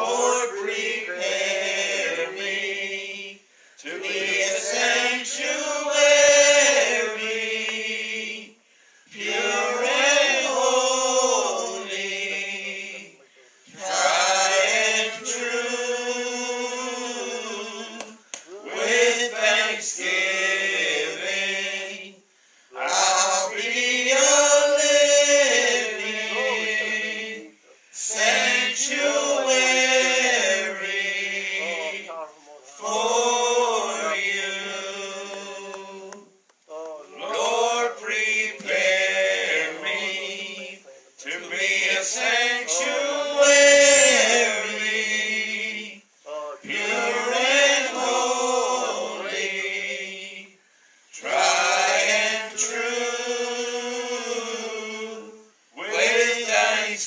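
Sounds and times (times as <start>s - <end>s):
two men singing gospel: 0.0s - 36.4s, 37.1s - 57.0s.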